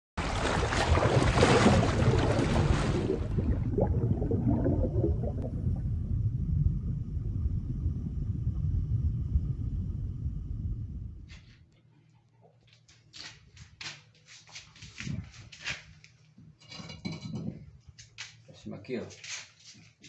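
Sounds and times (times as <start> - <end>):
water splash: 0.2 - 6.1
underwater bubbling rumble: 0.2 - 11.4.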